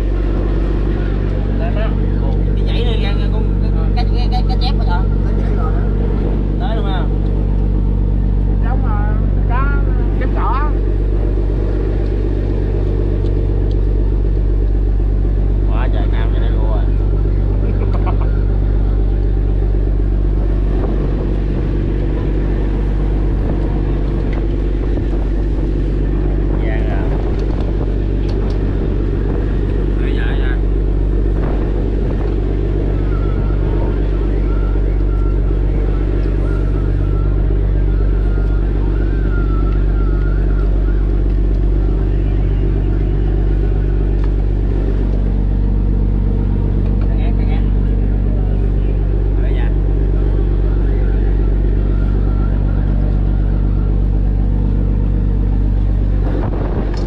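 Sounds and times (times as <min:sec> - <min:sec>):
boat engine droning: 0:00.0 - 0:57.0.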